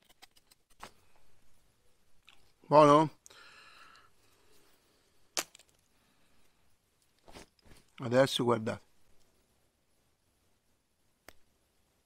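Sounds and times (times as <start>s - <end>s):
sharp wood crack: 5.3s - 5.9s.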